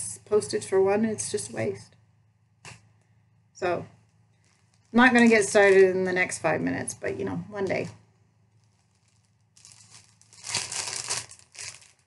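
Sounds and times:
plastic packaging crinkling: 4.3 - 5.9, 8.5 - 12.0.

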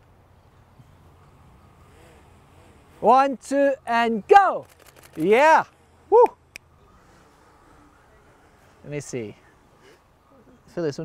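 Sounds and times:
faint outdoor hiss: 0.0 - 11.0
camera shutter click: 4.6 - 5.4
person cheering woo: 6.1 - 6.4.

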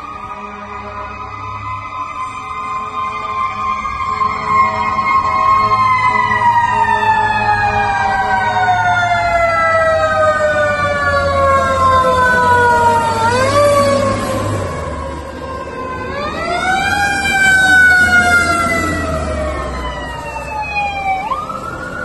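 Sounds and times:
fire truck siren wailing: 0.0 - 22.0.

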